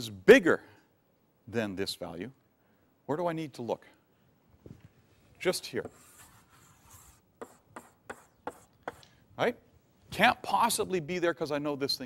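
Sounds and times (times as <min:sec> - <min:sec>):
chalk scraping on blackboard: 0:05.8 - 0:09.0
short sharp chalk strokes: 0:05.8 - 0:09.2.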